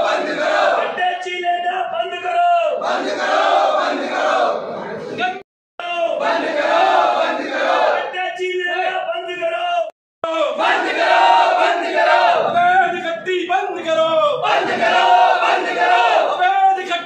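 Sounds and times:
crowd of men chanting: 0.0s - 1.0s, 2.8s - 4.7s, 6.2s - 8.2s, 10.4s - 12.7s, 14.3s - 16.4s.

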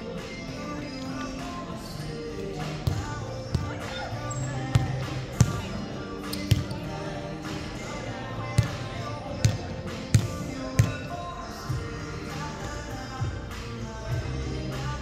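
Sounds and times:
music in a hall: 0.0s - 15.0s
voices in a hall: 0.0s - 15.0s
volleyball bouncing on wooden floor: 9.4s - 11.0s.

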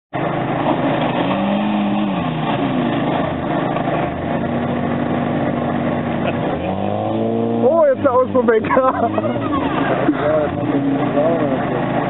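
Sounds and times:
car engine under throttle: 0.1s - 12.0s.

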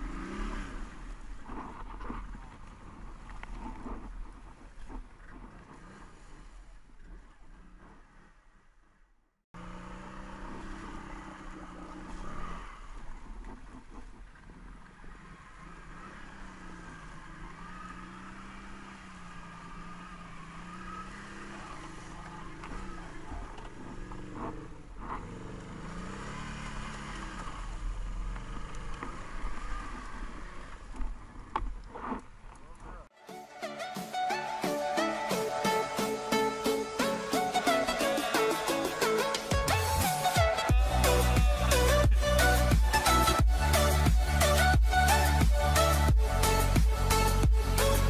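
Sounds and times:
atv engine revving: 0.0s - 4.1s, 9.6s - 33.1s, 36.3s - 48.0s.

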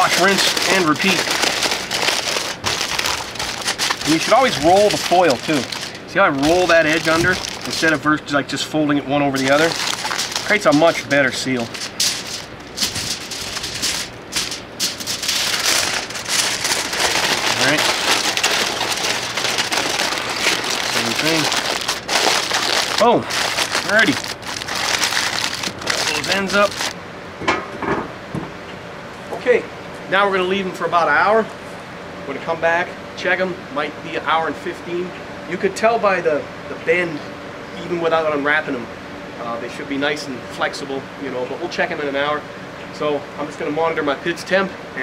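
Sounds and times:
aluminium foil crinkling: 0.0s - 8.1s, 9.3s - 27.0s.

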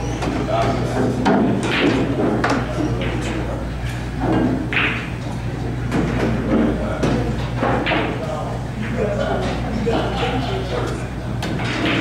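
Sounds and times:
indistinct chatter: 0.0s - 12.0s
steady low hum: 0.0s - 12.0s.

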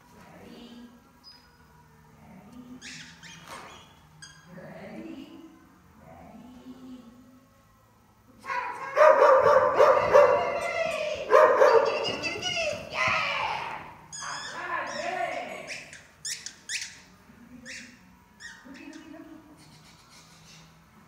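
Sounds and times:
dog barking and whining: 8.5s - 12.4s
dog yipping: 8.9s - 12.3s, 14.1s - 17.0s, 17.6s - 19.0s.

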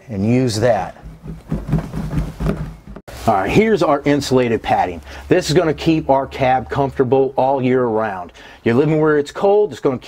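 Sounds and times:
hands rubbing mat on metal floor: 0.8s - 3.2s.

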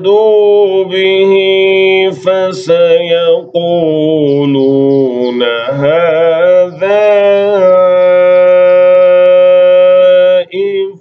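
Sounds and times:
man reciting holding a vowel: 0.0s - 11.0s.

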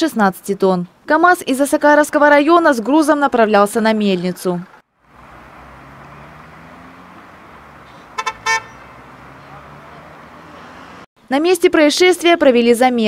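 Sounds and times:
traffic noise: 1.7s - 11.1s
vehicle horn toots: 7.8s - 9.6s.

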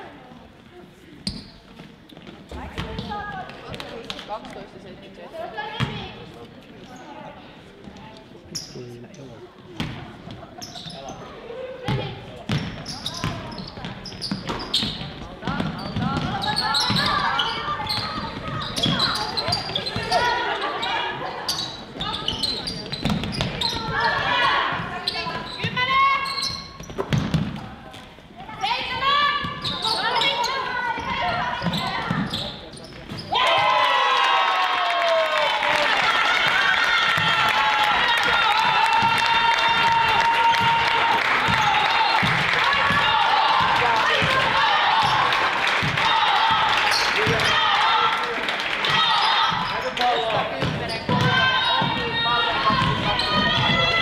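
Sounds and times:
players shouting: 33.3s - 54.0s
basketball bouncing on wooden floor: 50.6s - 54.0s.

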